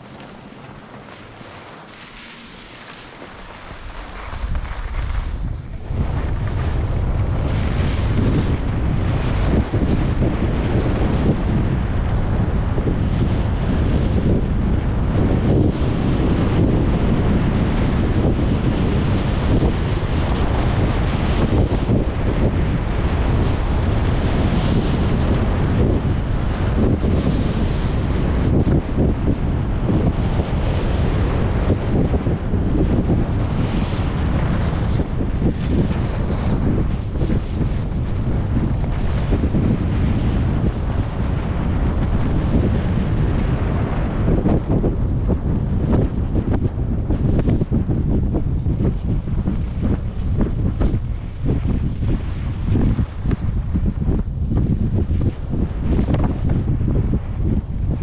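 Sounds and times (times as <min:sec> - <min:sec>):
skis hissing over snow: 0:00.0 - 0:06.0
wind buffeting microphone: 0:00.0 - 0:58.0.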